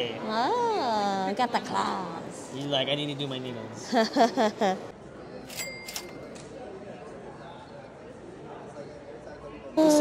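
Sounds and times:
crowd murmur in hall: 0:00.0 - 0:10.0.

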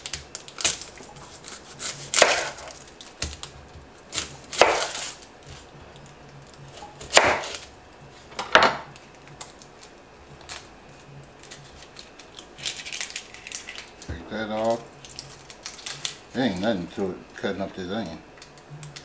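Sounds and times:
knife chopping on wooden board: 0:01.4 - 0:03.4, 0:04.1 - 0:05.6, 0:07.0 - 0:07.6.

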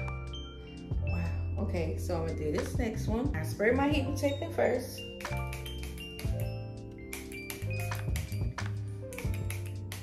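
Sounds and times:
background music with bass and chimes: 0:00.0 - 0:09.9.

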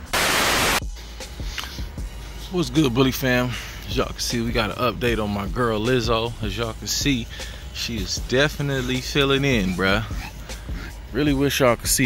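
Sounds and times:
white noise static burst: 0:00.0 - 0:00.8.

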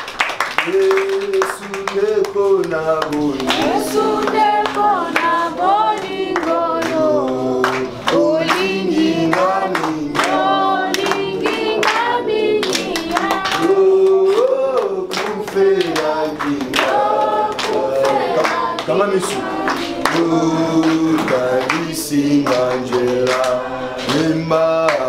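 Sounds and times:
hand claps: 0:00.0 - 0:25.0
group singing unaccompanied: 0:00.6 - 0:25.0.

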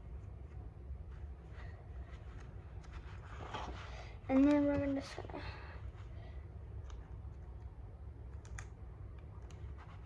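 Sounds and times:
low steady hum: 0:00.0 - 0:10.0
small clicks: 0:08.2 - 0:09.7.

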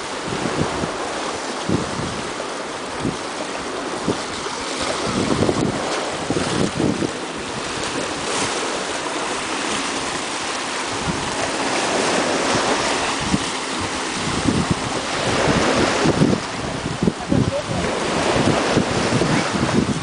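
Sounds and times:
waves washing over rocks: 0:00.0 - 0:20.0
wind rumble on microphone: 0:00.0 - 0:20.0.

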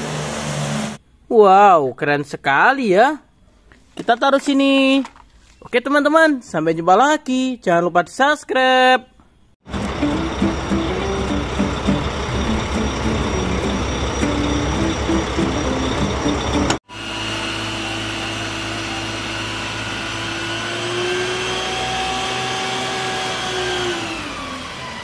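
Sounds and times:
noisy truck engine: 0:09.6 - 0:25.0
tanker engine and pump drone: 0:09.7 - 0:25.0.

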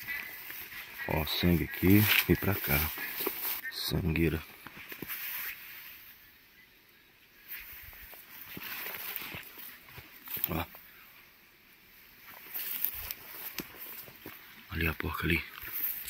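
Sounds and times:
footsteps through dry undergrowth: 0:00.0 - 0:06.2, 0:07.3 - 0:16.0.

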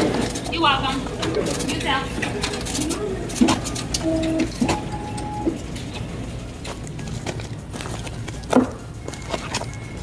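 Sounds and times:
copier hum: 0:00.0 - 0:10.0
copier printing: 0:00.0 - 0:10.0.

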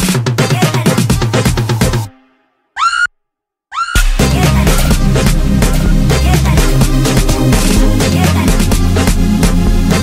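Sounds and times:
electronic dance beat: 0:00.0 - 0:02.1, 0:04.0 - 0:10.0.

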